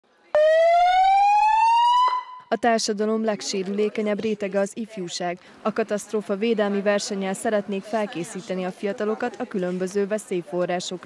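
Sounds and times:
emergency vehicle siren rising: 0:00.3 - 0:02.5.

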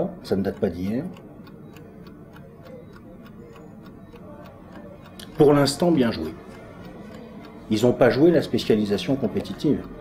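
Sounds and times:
chess clock ticking: 0:00.0 - 0:10.0.

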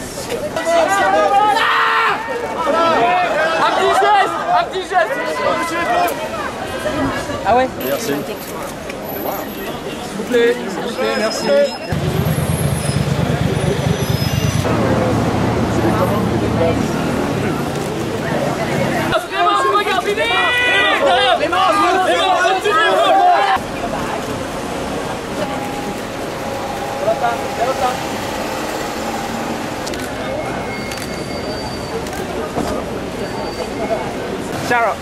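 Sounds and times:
people talking: 0:00.0 - 0:35.0
street traffic: 0:00.0 - 0:35.0
vehicle engine running: 0:12.0 - 0:16.8.

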